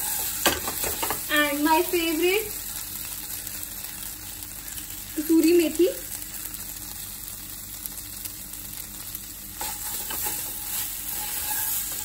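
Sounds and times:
vegetables sizzling in a pan: 0.0 - 12.0.

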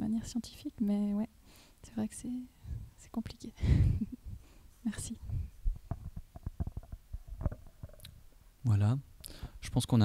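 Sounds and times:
microphone handling knocks and rubs: 3.8 - 8.3.

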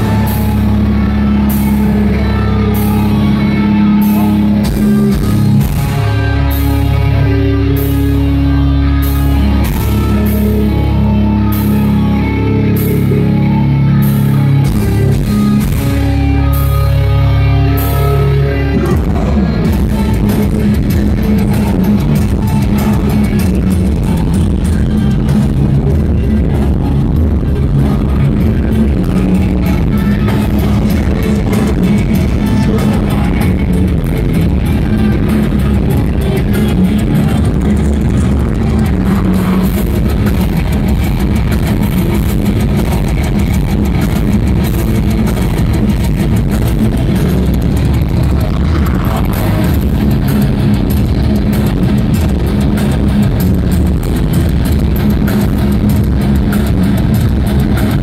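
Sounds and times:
bass guitar: 0.0 - 58.0
distorted electric guitars: 0.0 - 58.0
drums: 0.0 - 58.0.

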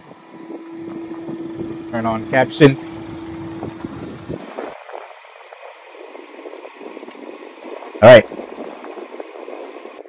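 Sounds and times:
wind-like hiss with crackles: 0.0 - 10.0.

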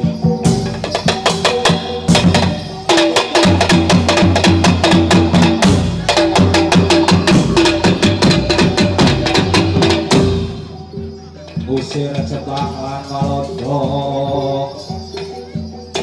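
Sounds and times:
fast drum strokes: 0.0 - 16.0.

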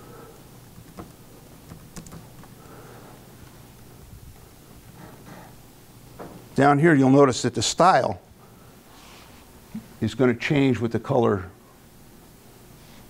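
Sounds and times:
low room noise: 0.0 - 13.0
typing on laptop keyboard: 0.6 - 2.6.

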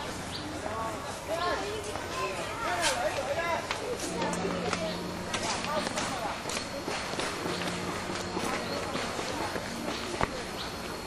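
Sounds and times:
people chattering: 0.0 - 11.0.

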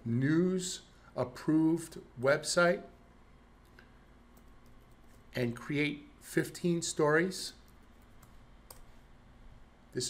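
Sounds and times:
keyboard and mouse clicks: 7.7 - 8.9.

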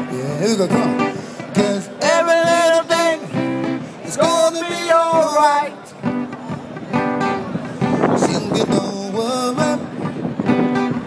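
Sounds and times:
man singing: 0.0 - 6.2, 7.8 - 10.2
acoustic guitar strumming: 0.0 - 11.0.

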